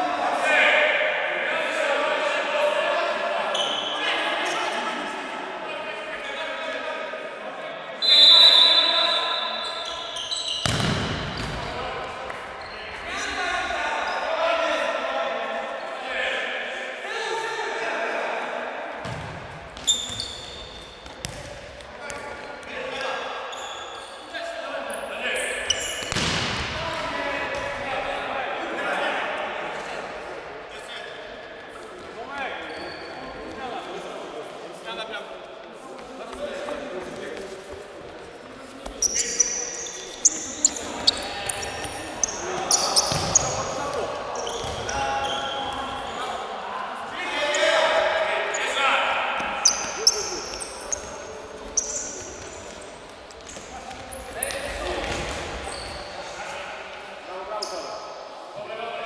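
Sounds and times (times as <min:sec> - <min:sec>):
ball kicked and bouncing: 0:10.6 - 0:11.5.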